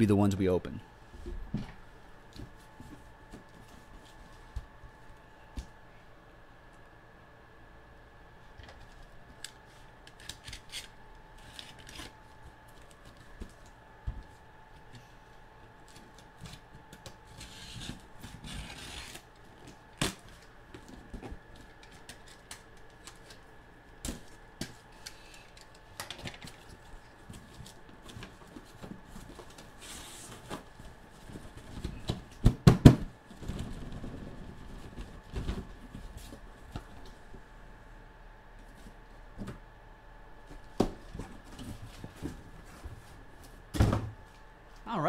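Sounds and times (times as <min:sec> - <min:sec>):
tape cut and peeled: 0:10.1 - 0:12.2, 0:17.3 - 0:19.3
loud knocks of boxes: 0:31.9 - 0:33.2, 0:43.7 - 0:44.2.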